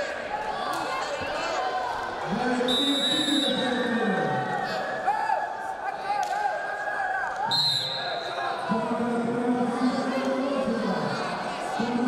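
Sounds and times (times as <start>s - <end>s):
murmur of large hall: 0.0s - 12.0s.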